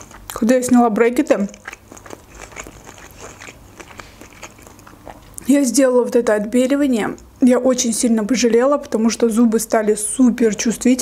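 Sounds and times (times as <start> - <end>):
wet chewing mouth clicks: 0.0 - 5.5.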